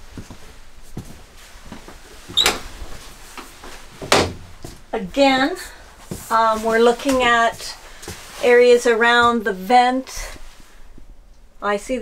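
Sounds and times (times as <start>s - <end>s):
door squeak: 2.3s - 2.7s.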